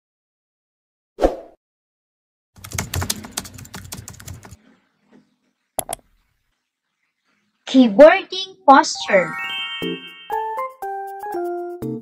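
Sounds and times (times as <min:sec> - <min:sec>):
rapid keyboard typing: 0:02.6 - 0:04.6.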